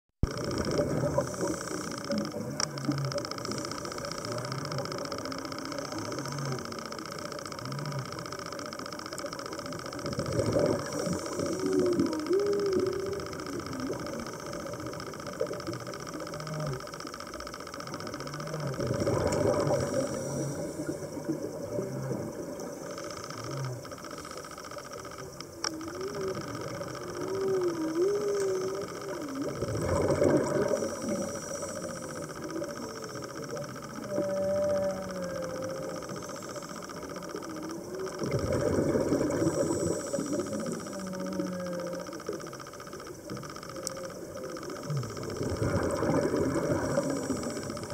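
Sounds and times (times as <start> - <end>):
soft wavering tones: 0.2 - 47.9.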